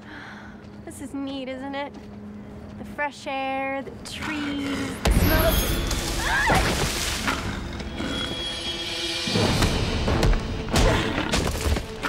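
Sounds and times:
tense drama score: 0.0 - 12.0.

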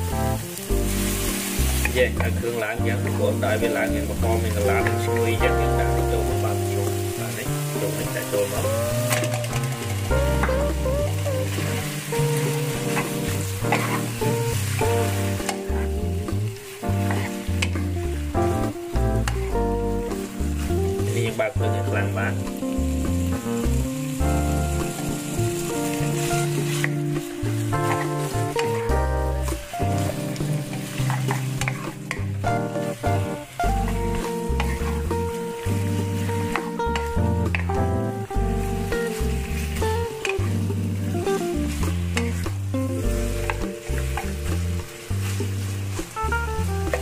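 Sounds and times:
background music: 0.0 - 47.0
meat sizzling in hot oil: 0.0 - 47.0
wooden spatula scraping wok: 0.4 - 18.8, 19.9 - 37.7, 38.4 - 47.0
wooden spatula scraping pan: 11.5 - 16.1, 17.0 - 18.0.

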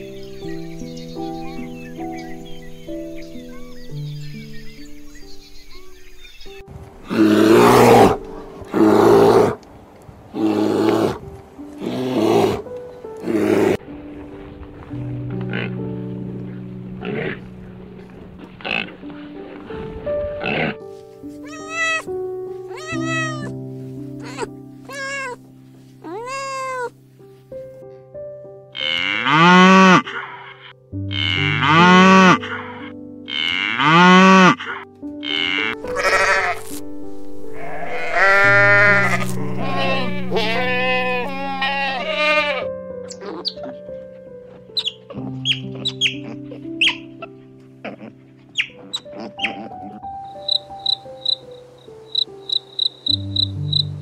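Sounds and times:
soft piano music: 0.0 - 54.0
loud bleats: 21.4 - 22.1, 22.7 - 23.5, 24.2 - 25.4, 26.0 - 26.9, 28.8 - 30.5, 31.1 - 32.5, 33.3 - 36.7, 37.5 - 43.6
short high animal calls: 21.4 - 22.1, 22.7 - 23.5, 24.2 - 25.4, 26.0 - 26.9.

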